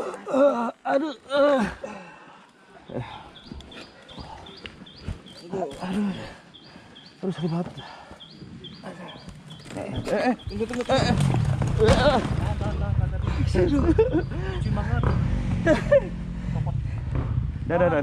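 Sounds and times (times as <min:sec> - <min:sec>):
man groaning in pain: 0:00.0 - 0:02.1.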